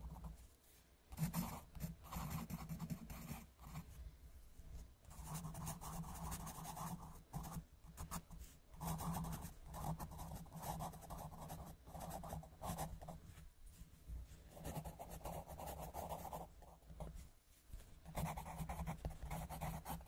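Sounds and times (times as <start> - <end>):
pencil scribbling on paper: 1.1 - 3.9, 5.1 - 13.4, 14.5 - 17.2, 18.0 - 20.0.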